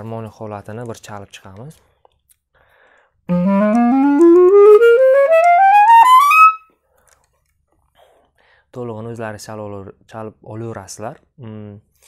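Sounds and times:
clarinet playing a scale: 3.3s - 6.6s.

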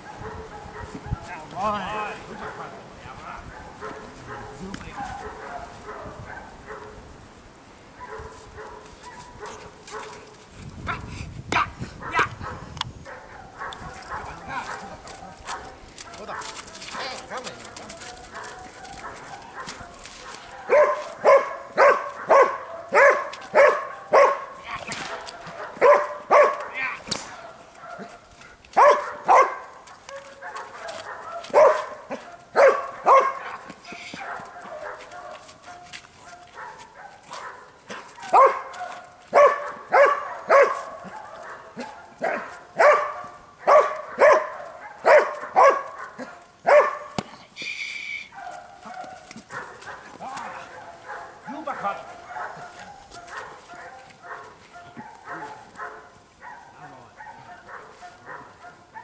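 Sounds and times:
dog barking sharply: 3.5s - 7.0s, 11.6s - 17.2s, 18.3s - 28.2s, 28.8s - 47.3s, 48.3s - 59.0s.

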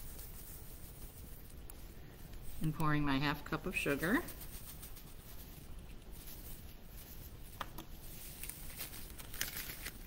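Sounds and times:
plastic bag crinkling: 0.0s - 2.8s, 3.4s - 10.0s.

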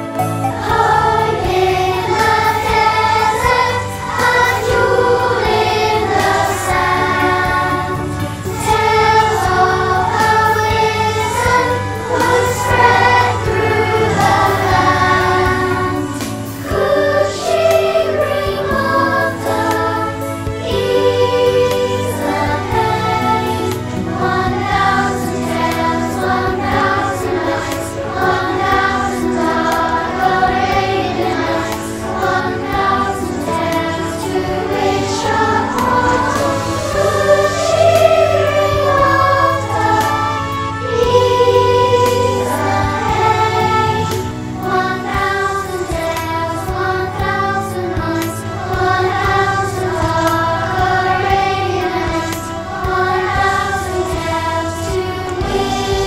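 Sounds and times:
children's choir singing: 0.0s - 56.0s.

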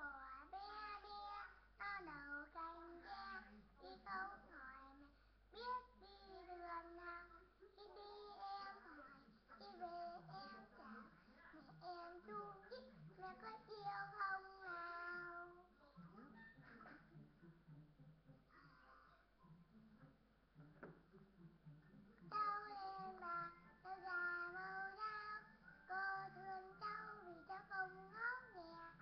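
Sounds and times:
girl singing: 0.0s - 11.1s, 11.7s - 15.6s, 22.3s - 29.0s.

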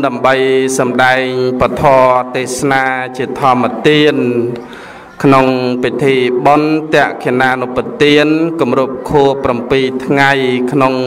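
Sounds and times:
person chanting long held notes: 0.0s - 11.0s.

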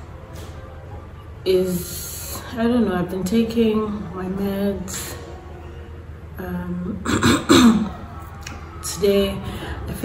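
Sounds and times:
woman clearing her throat: 7.0s - 8.0s.

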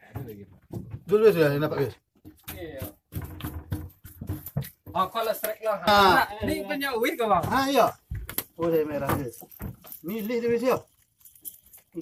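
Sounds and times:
men talking indistinctly: 0.0s - 3.0s, 4.9s - 10.9s.

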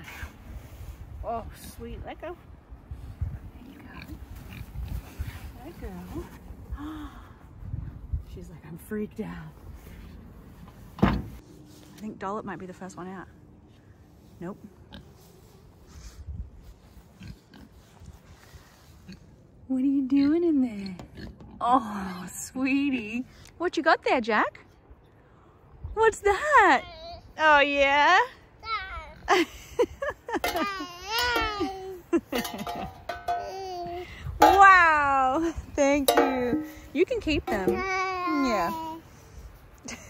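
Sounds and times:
toddler babbling and squealing: 26.8s - 27.4s, 28.6s - 29.3s, 30.6s - 32.0s, 33.4s - 34.2s, 37.7s - 39.1s
metal bowls clinking: 32.3s - 33.6s, 35.9s - 37.8s.

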